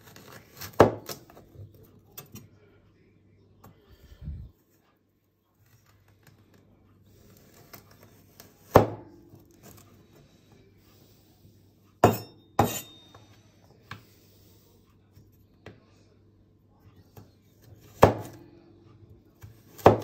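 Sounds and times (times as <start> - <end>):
cleaver chopping on countertop: 0.1 - 1.4, 7.4 - 9.1, 12.0 - 13.0, 17.7 - 18.4, 19.4 - 20.0.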